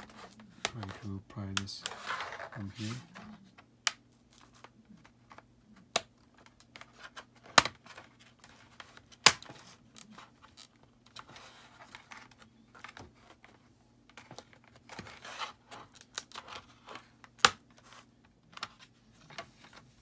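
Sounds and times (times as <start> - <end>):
plastic scraping: 0.0 - 3.6.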